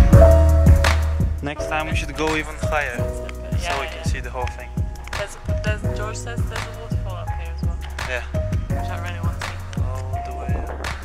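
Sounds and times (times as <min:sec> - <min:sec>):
electronic beat music: 0:00.0 - 0:11.0.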